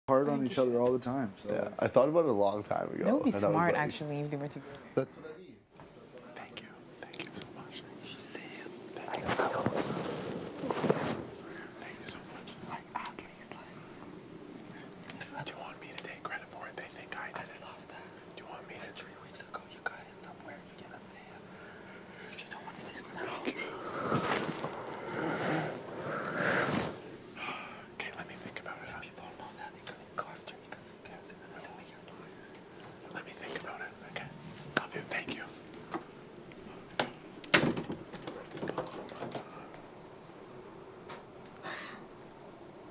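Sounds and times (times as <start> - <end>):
men whispering: 2.6 - 26.2, 27.4 - 35.7.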